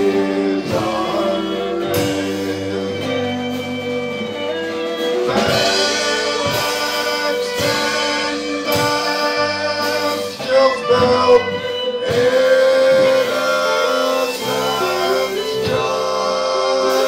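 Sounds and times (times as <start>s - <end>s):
drum kit: 0.0s - 17.0s
electric bass: 0.0s - 17.0s
fiddle: 0.0s - 17.0s
guitars: 0.0s - 17.0s
person singing: 0.0s - 17.0s.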